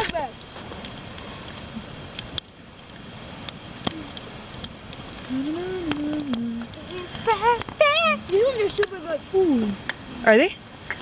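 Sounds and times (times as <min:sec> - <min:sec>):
log fire crackling: 0:00.0 - 0:11.0
person humming: 0:03.9 - 0:04.2, 0:05.2 - 0:07.4.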